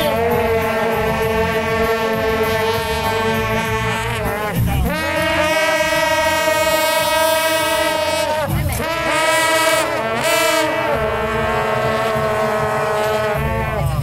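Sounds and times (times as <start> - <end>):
shawm playing gliding notes: 0.0 - 14.0.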